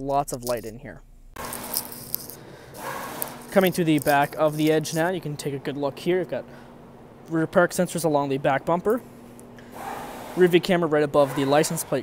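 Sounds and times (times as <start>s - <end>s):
faint steady hum: 0.0s - 12.0s
rustling and handling noise: 1.4s - 5.2s.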